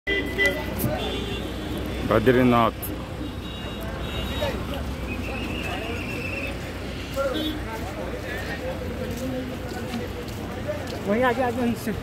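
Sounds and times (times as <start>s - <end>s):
low rumble of street noise: 0.1s - 12.0s
voices talking: 0.1s - 12.0s.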